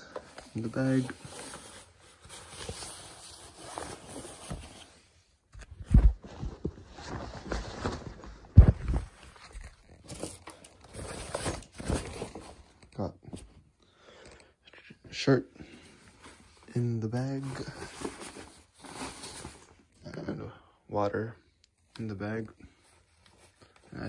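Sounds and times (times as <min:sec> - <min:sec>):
fabric rustling: 0:00.4 - 0:12.4, 0:15.8 - 0:19.9.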